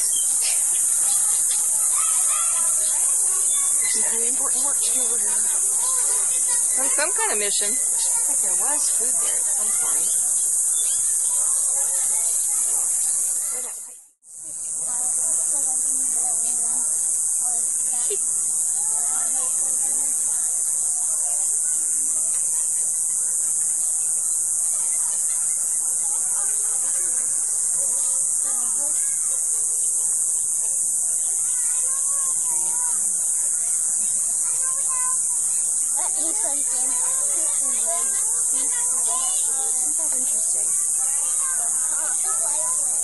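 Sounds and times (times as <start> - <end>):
high-pitched insect chorus: 0.0 - 43.0.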